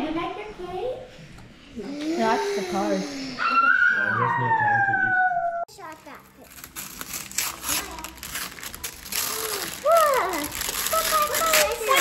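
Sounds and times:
high-pitched vocal wail: 0:03.3 - 0:05.7.

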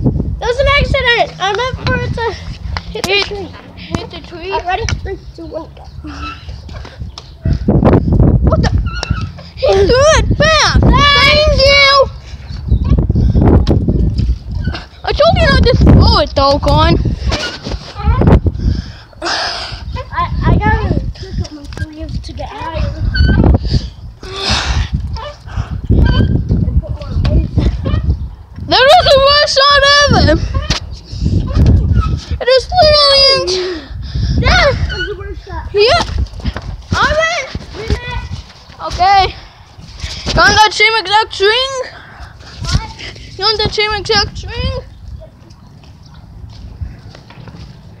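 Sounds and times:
wind rumble on microphone: 0:00.0 - 0:40.8, 0:42.0 - 0:48.0.

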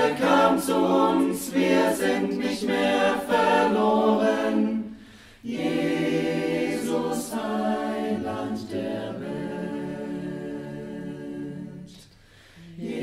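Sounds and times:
choir singing a cappella: 0:00.0 - 0:13.0.

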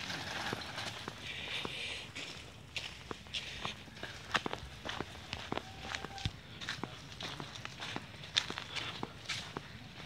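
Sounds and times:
footsteps on leafy dirt path: 0:00.0 - 0:10.0.

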